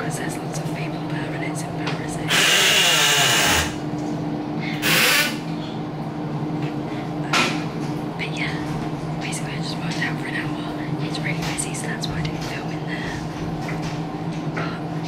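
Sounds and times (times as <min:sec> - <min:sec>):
steady low hum: 0:00.0 - 0:15.0
loud hissing bursts: 0:02.3 - 0:03.8, 0:04.8 - 0:05.4.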